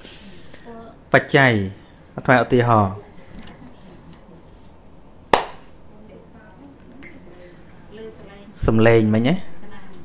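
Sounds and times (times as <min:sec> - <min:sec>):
low steady room noise: 0:00.0 - 0:10.0.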